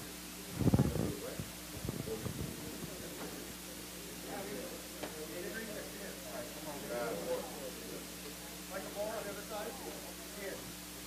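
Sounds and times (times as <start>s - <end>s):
faint background murmuring: 0.0s - 11.0s
low muffled rumble: 0.5s - 3.0s.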